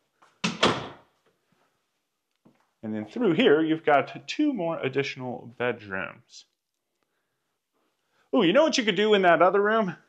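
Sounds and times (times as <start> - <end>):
interior door closing: 0.4 - 1.1.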